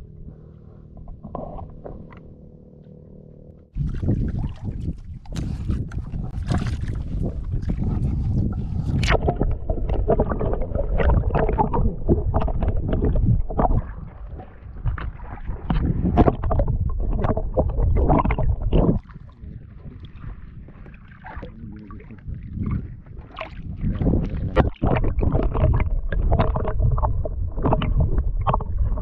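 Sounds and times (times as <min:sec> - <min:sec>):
water sloshing and gurgling: 0:00.0 - 0:29.0
small knocks and splashes: 0:03.7 - 0:07.8.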